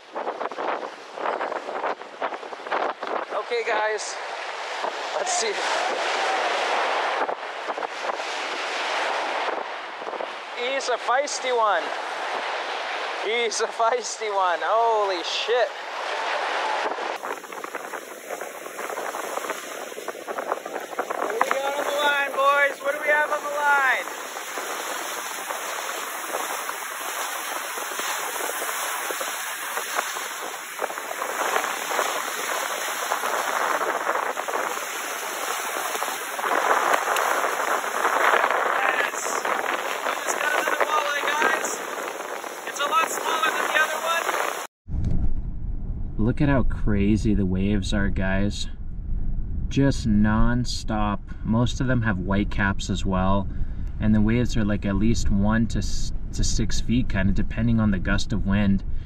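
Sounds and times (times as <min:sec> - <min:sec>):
waves breaking on boulders: 0:00.0 - 0:44.7
strong wind: 0:00.0 - 0:59.0.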